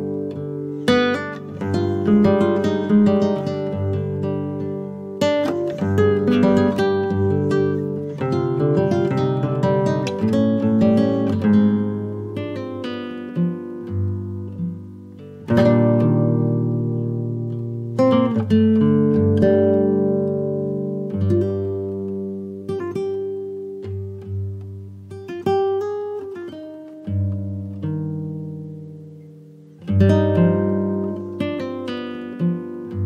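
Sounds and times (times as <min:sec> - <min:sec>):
acoustic guitar picked notes: 0:00.0 - 0:33.0
strummed guitar chords: 0:00.0 - 0:33.0.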